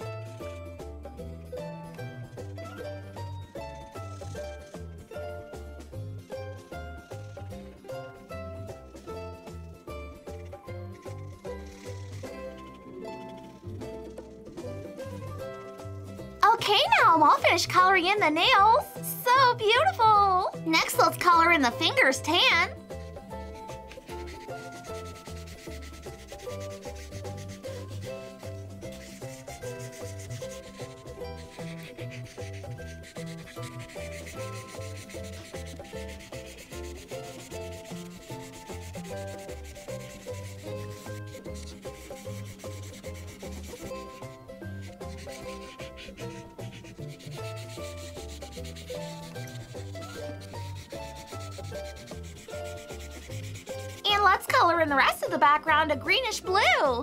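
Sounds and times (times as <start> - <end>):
marker rubbing over paper: 0.0 - 0.9, 3.8 - 4.9, 7.0 - 7.7, 9.0 - 19.9, 20.8 - 54.6
soft background music: 0.0 - 57.0.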